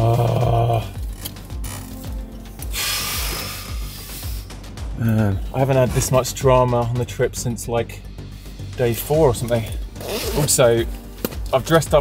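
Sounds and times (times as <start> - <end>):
background music with low beat: 0.0 - 12.0
hand brake lever ratcheting: 1.0 - 2.0.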